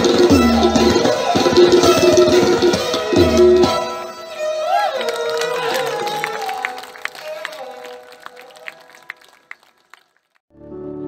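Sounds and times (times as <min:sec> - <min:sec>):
tabla strokes: 0:00.0 - 0:05.3.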